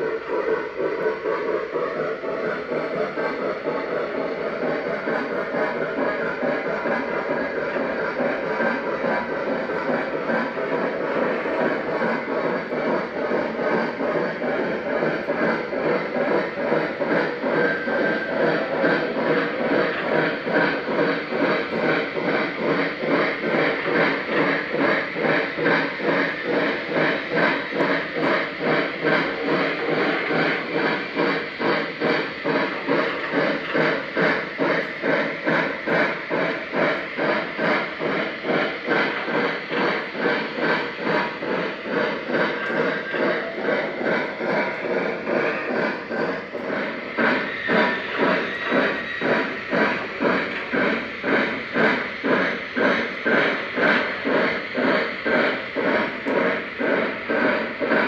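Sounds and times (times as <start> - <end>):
electronic steam locomotive chuffing: 0.0 - 58.0.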